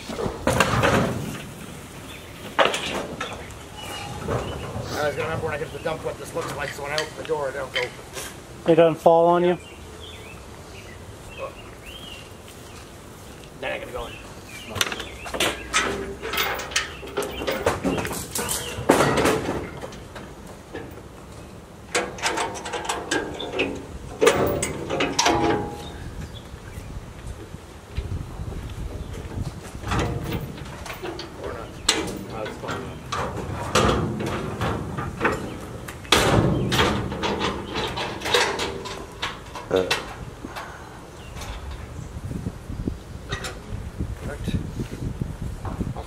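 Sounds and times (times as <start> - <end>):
wooden furniture knocks and clunks: 0.0 - 1.4
indistinct voices talking: 3.2 - 9.8.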